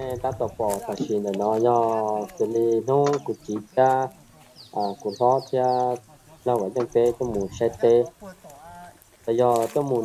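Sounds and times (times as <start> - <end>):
bird chirping: 0.0 - 10.0
man speaking: 0.0 - 10.0.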